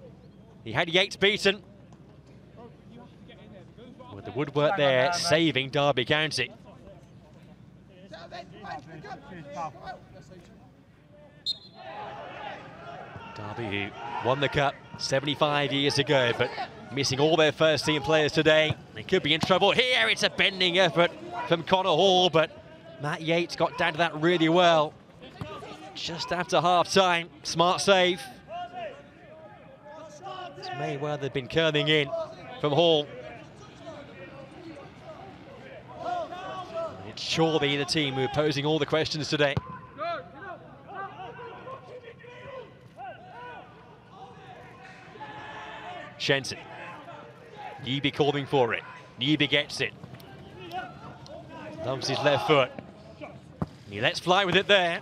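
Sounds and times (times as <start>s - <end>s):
low open-air ground noise: 0.0s - 55.0s
distant footballers shouting: 7.9s - 10.3s, 11.0s - 55.0s.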